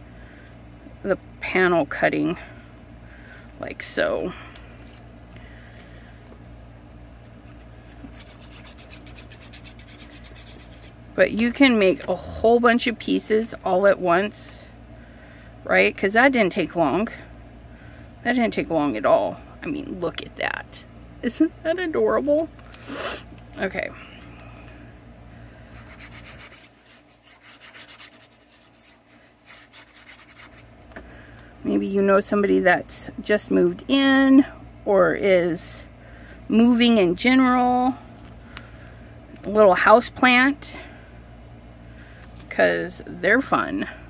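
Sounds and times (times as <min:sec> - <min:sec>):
low steady hum: 0:00.0 - 0:44.0
glue nozzle scratching on cardstock: 0:08.1 - 0:11.0, 0:25.8 - 0:30.6.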